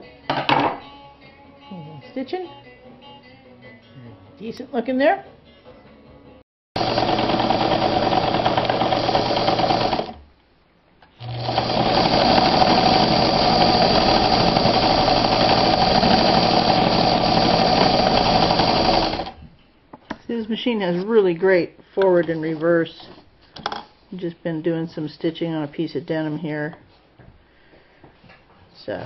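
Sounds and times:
electric sewing machine running: 0:06.8 - 0:10.2, 0:11.2 - 0:19.4.

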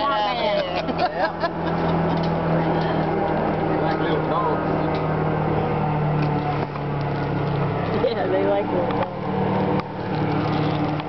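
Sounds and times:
airboat engine idling: 0:00.0 - 0:11.0.

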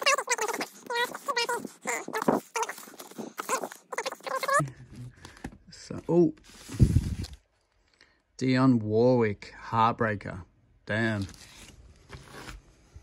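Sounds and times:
vinyl record sleeves squeaking: 0:00.0 - 0:04.6.

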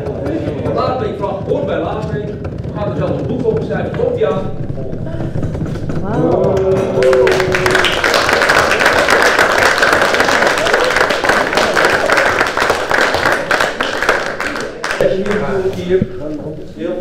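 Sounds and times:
crowd applauding: 0:05.6 - 0:15.6.

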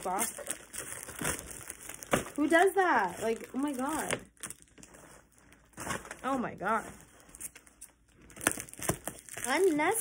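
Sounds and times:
packaging rustling and crackling: 0:00.0 - 0:10.0.

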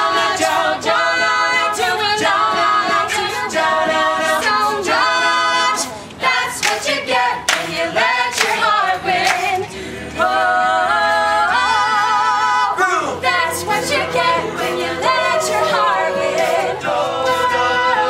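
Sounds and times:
a cappella group singing in harmony: 0:00.0 - 0:18.0.

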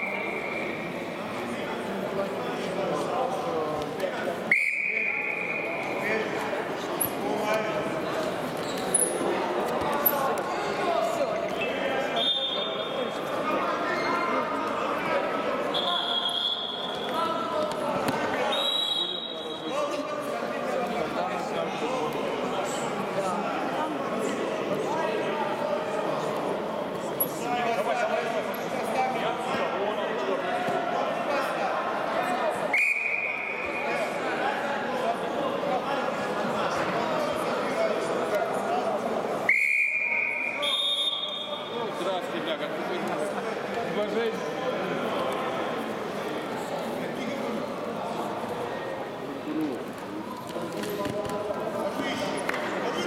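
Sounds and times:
hall chatter: 0:00.0 - 0:53.0
higher-pitched whistle: 0:04.5 - 0:05.8, 0:15.8 - 0:17.0, 0:18.5 - 0:19.4, 0:32.7 - 0:33.6, 0:39.5 - 0:41.6
referee's whistle blast: 0:04.5 - 0:05.8, 0:15.7 - 0:17.0, 0:18.5 - 0:19.7, 0:39.5 - 0:41.7.

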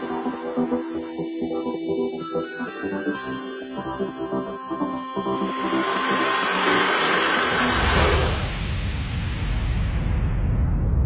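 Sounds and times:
keyboard soundtrack music: 0:00.0 - 0:08.6
low rumble: 0:06.8 - 0:11.0.

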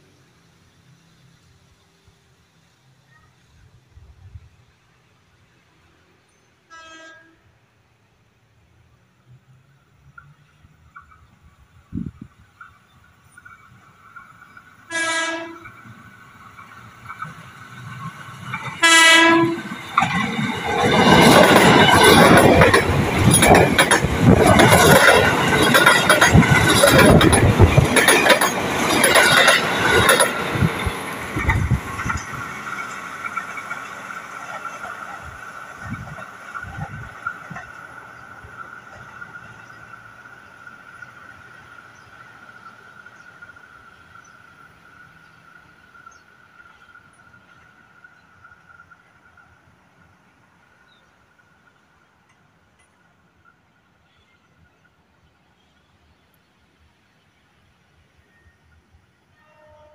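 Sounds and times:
train horn blasts: 0:06.6 - 0:07.5, 0:14.9 - 0:15.8, 0:18.8 - 0:19.8, 0:59.3 - 0:59.9
train wheels clattering on rails: 0:15.7 - 0:40.4.

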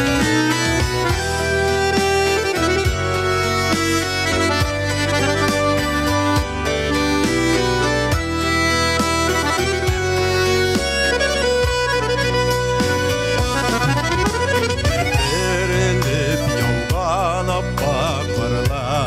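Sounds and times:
folk-pop music with accordion: 0:00.0 - 0:19.0
man singing: 0:15.0 - 0:19.0.

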